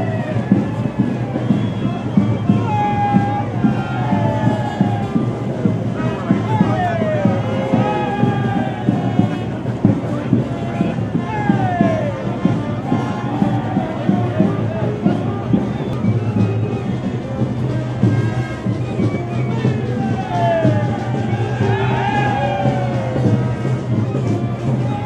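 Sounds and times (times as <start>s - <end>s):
brass band playing: 0.0s - 25.0s
crowd voices: 0.0s - 25.0s
drum and cymbal beat: 0.0s - 25.0s.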